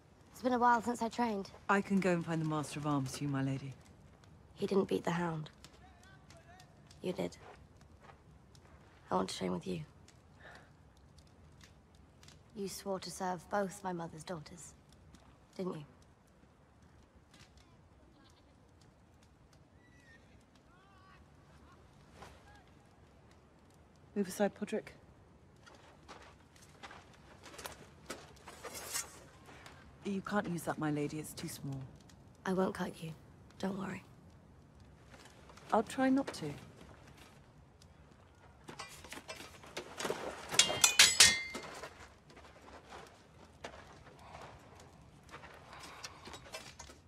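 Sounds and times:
footsteps: 0:25.5 - 0:30.6, 0:34.6 - 0:47.0
swords clashing: 0:40.5 - 0:41.7.

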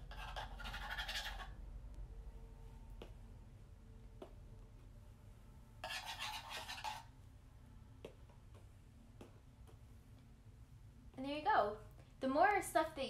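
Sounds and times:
wire whisk scratching paper: 0:00.0 - 0:01.5, 0:05.8 - 0:07.1.

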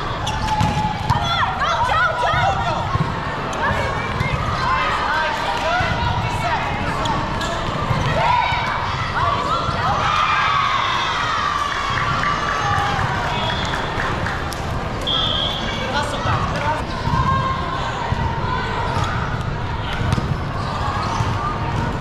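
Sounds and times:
hubbub of voices: 0:00.0 - 0:22.0
shoes squeaking on court floor: 0:06.8 - 0:08.2.

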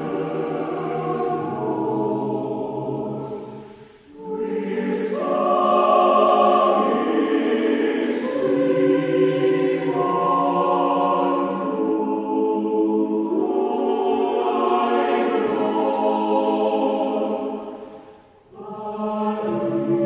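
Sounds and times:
choir singing held chords: 0:00.0 - 0:20.0.

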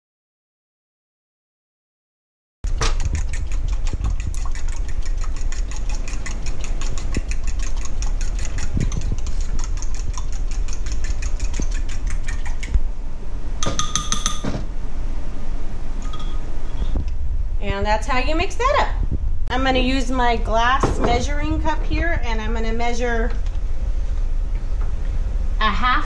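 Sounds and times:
whisk clicking against bowl: 0:02.7 - 0:12.8, 0:13.6 - 0:14.4
utensil clinking on bowl: 0:13.6 - 0:14.5, 0:16.0 - 0:16.4
low rumble: 0:14.6 - 0:26.0.

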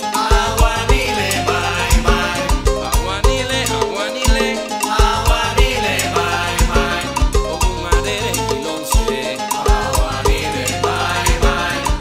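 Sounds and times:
latin band playing instrumental: 0:00.0 - 0:12.0
sharp percussion hits: 0:00.0 - 0:12.0.

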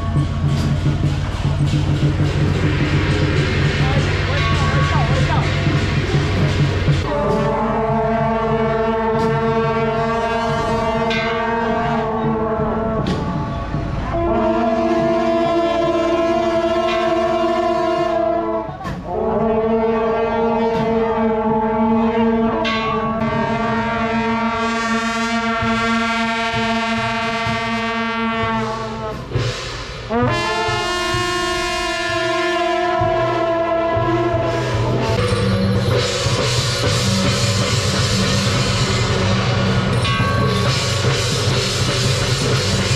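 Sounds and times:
brass horns blowing sustained notes: 0:00.0 - 0:42.9.

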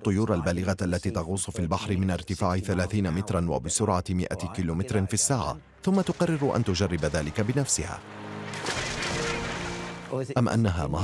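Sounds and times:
birds plunge-diving into water: 0:06.0 - 0:10.2.

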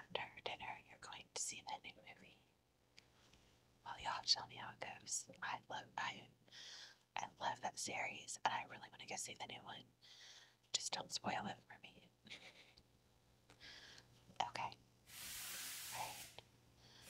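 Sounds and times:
woman whispering: 0:00.0 - 0:02.4, 0:03.9 - 0:06.3, 0:07.2 - 0:09.8, 0:10.8 - 0:12.1, 0:14.4 - 0:14.8, 0:16.0 - 0:16.3.

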